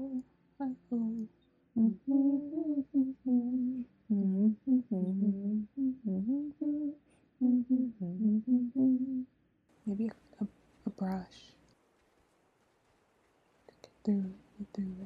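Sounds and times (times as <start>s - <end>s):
woman humming: 0.0s - 9.3s, 14.1s - 15.0s.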